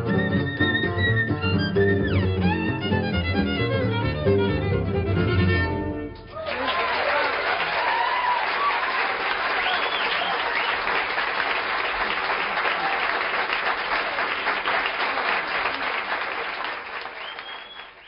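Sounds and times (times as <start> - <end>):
audience applauding: 6.3 - 18.0.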